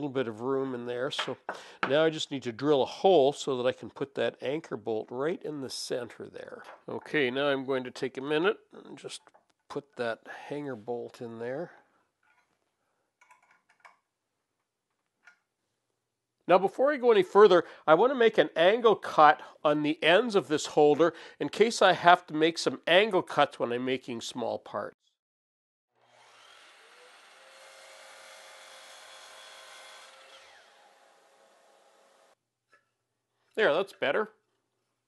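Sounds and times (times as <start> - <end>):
miter saw cutting board: 26.0 - 32.4.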